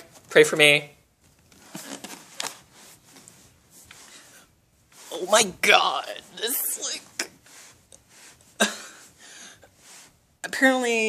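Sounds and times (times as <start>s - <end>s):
handling rustling: 1.2s - 4.3s.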